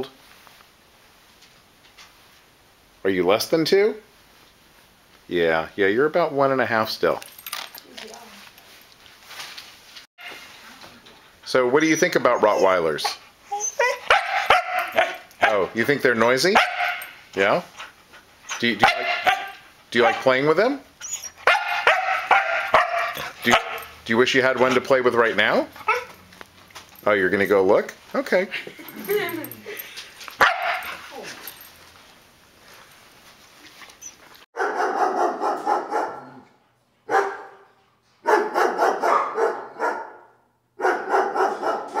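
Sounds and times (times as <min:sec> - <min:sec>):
dog barking: 0:13.9 - 0:15.7, 0:16.6 - 0:17.2, 0:18.8 - 0:20.3, 0:21.4 - 0:24.0, 0:25.8 - 0:26.2, 0:30.4 - 0:31.0, 0:34.6 - 0:36.4, 0:37.1 - 0:42.0.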